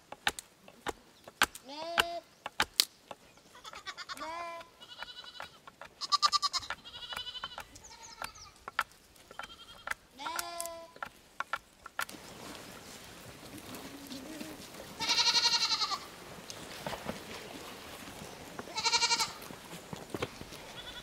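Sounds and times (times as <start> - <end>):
sheep bleating: 3.6 - 8.6, 9.3 - 11.0, 14.3 - 16.1, 18.7 - 19.5, 20.7 - 21.0
wood splitting knocks: 5.0 - 12.1.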